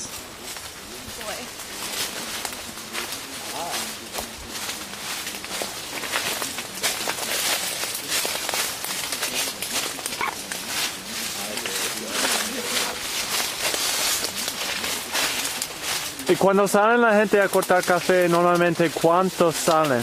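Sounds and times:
leaves rustling and crackling: 0.0 - 20.0.

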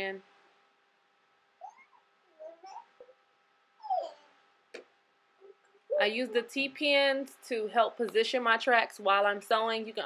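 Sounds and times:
animal whining: 1.6 - 3.2, 3.8 - 4.4.

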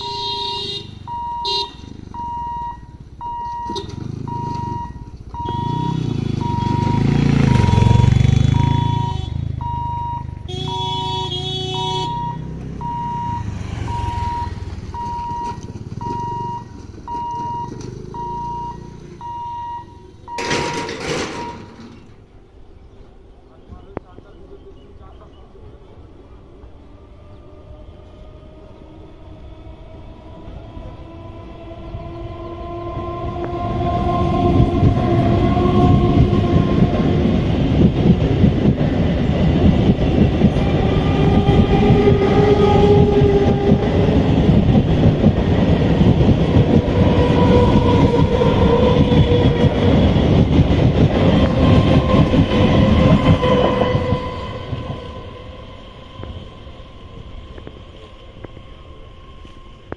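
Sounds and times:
traction motor whine: 3.3 - 11.0
train wheels clattering on rail: 20.3 - 22.2, 33.2 - 56.6.

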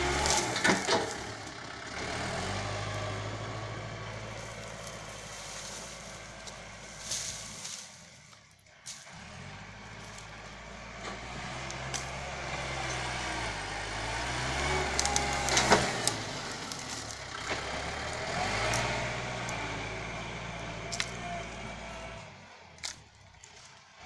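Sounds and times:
blade pushing soil: 0.0 - 24.0
tractor diesel engine running: 0.0 - 24.0.

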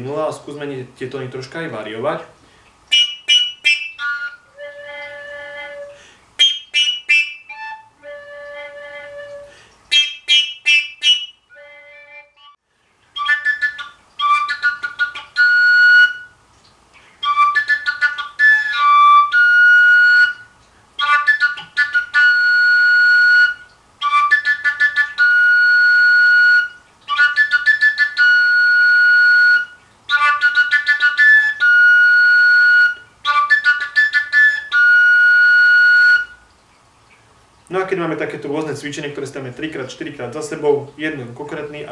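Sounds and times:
overtone flute notes: 2.9 - 12.6, 13.2 - 16.4, 17.1 - 36.5.

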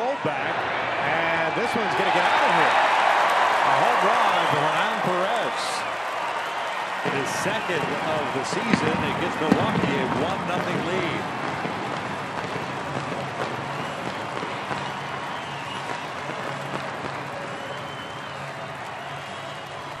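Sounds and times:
stadium crowd cheering: 0.0 - 20.0.

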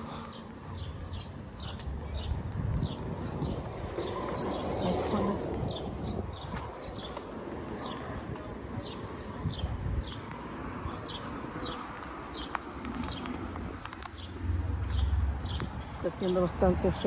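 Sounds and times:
street rumble: 0.0 - 17.0.

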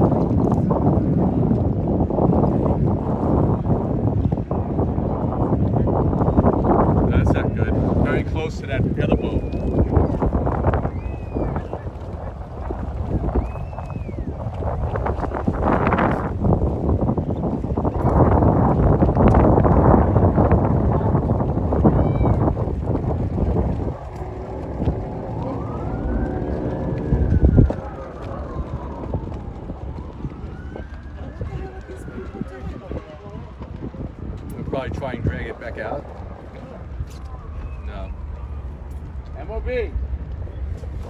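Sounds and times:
wind noise on microphone: 0.0 - 41.0
emergency siren wailing: 8.9 - 34.4, 35.0 - 39.6.

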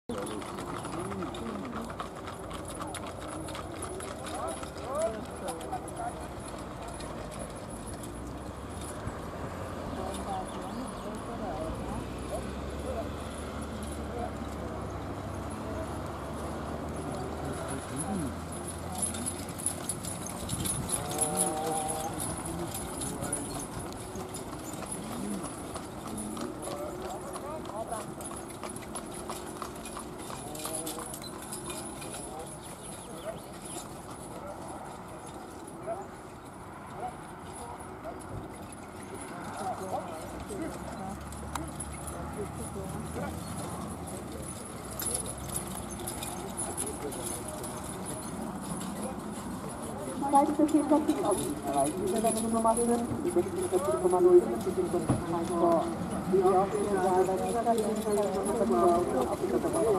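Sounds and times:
people's voices and calls: 0.0 - 59.9
hoofbeats of ponies: 0.1 - 59.9.

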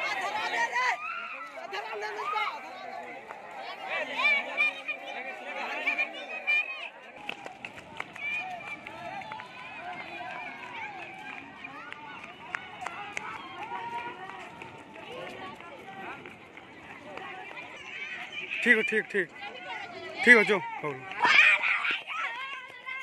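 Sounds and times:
crowd shouting and calling: 0.0 - 23.0.

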